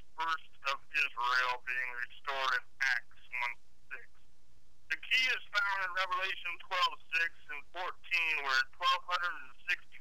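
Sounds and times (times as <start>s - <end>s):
person reading aloud: 0.0s - 4.2s, 4.9s - 10.0s
faint low hum: 0.0s - 10.0s.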